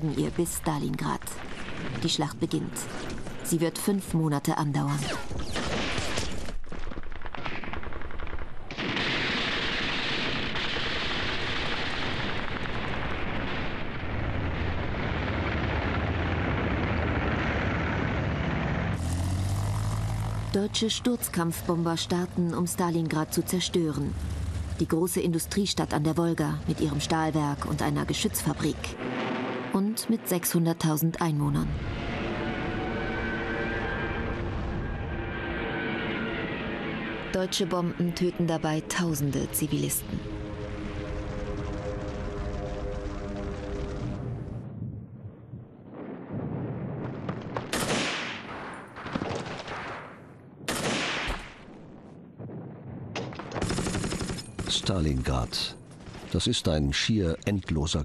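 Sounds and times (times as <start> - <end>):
steady low rumble: 11.1 - 46.2
low engine drone: 16.4 - 44.8
sustained music tones: 28.8 - 30.8, 31.7 - 44.6
rapid machine-gun fire: 53.4 - 55.0.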